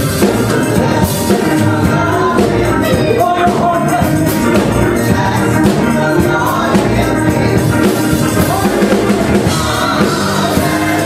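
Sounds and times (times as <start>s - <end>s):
steady beat: 0.0s - 11.0s
backing voices: 0.3s - 11.0s
man singing into a microphone: 0.4s - 11.0s.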